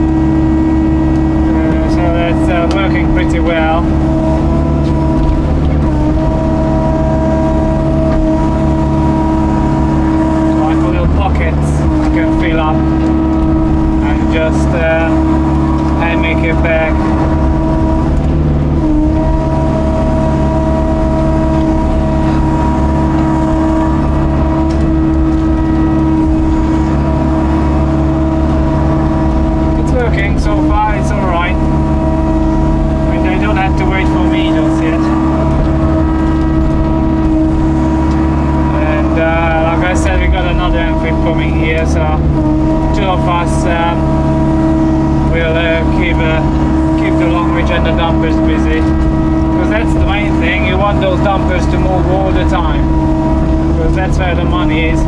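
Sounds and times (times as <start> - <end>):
excavator engine and hydraulics: 0.0 - 55.0.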